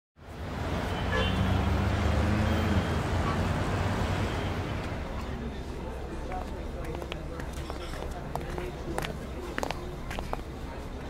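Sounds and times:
low rumble of vehicles: 0.2s - 11.0s.

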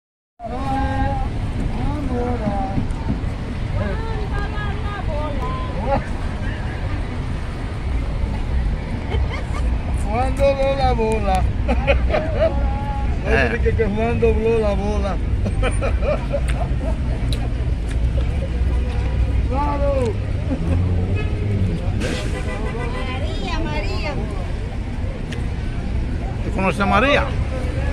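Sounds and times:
city street noise rumble: 0.4s - 27.9s
indistinct voices talking: 0.4s - 27.9s.

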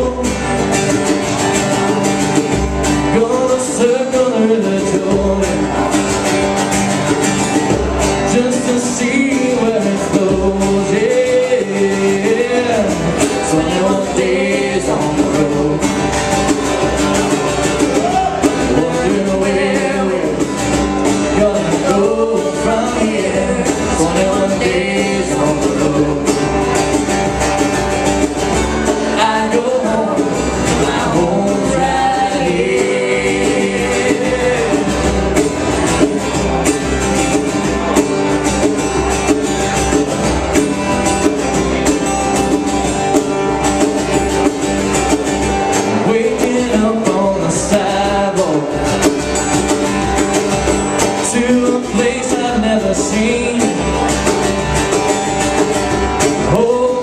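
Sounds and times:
strummed acoustic guitars: 0.0s - 57.0s
person singing: 8.3s - 16.1s, 17.9s - 20.6s, 21.3s - 26.6s, 29.1s - 35.2s.

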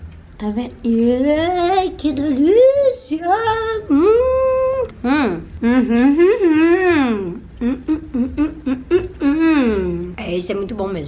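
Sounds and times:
woman humming mm while tasting: 3.9s - 10.2s.

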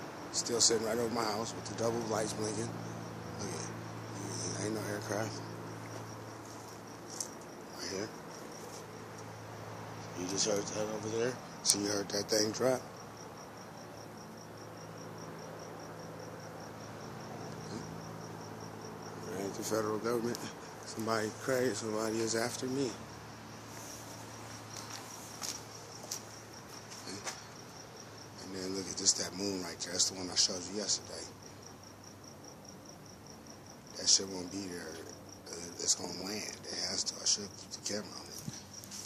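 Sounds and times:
crickets chirping: 0.0s - 39.0s.

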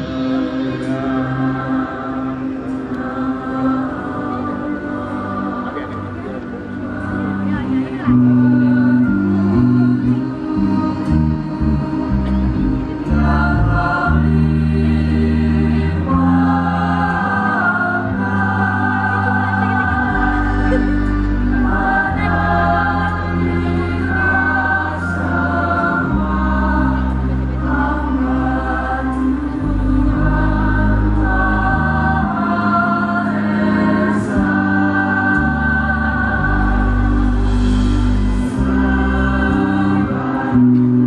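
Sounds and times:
choir singing slow chords: 0.0s - 41.0s
sustained bass notes: 0.0s - 41.0s.

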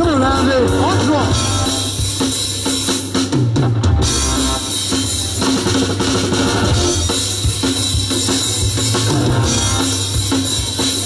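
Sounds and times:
rock and roll band playing: 0.0s - 11.0s
quick run of drum strokes: 0.8s - 11.0s.

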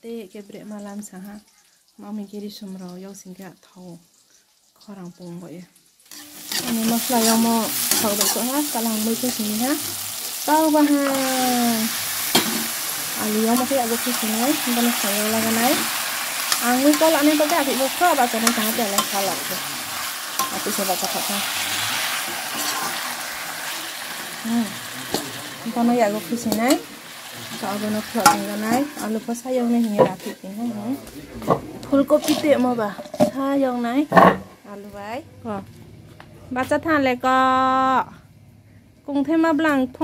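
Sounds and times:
chicken frying and sizzling: 0.0s - 35.2s
metal spoon scraping pan: 6.1s - 24.2s, 24.8s - 30.5s, 31.4s - 33.4s
person talking: 10.5s - 12.0s.

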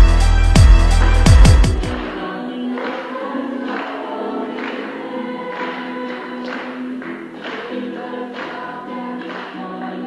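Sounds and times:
music with regular beat: 0.0s - 2.4s
gospel choir singing: 0.0s - 10.0s.

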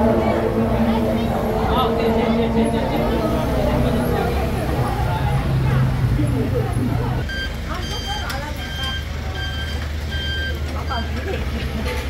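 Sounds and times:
low engine rumble: 0.0s - 12.0s
reversing alarm beeping: 7.2s - 11.1s.

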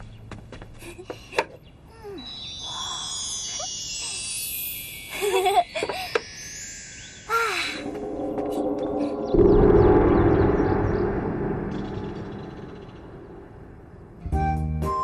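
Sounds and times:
deep gong strike: 7.8s - 14.3s.

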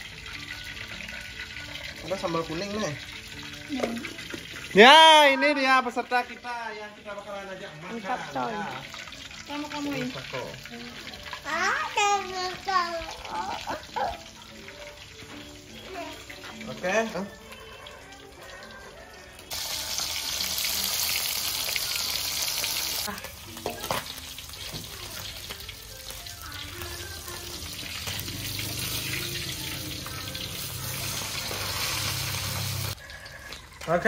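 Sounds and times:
fish sizzling in hot oil: 0.0s - 34.0s.

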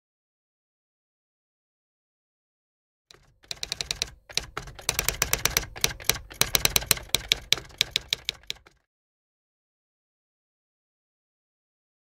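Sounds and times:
typewriter keys clacking: 3.1s - 8.8s.

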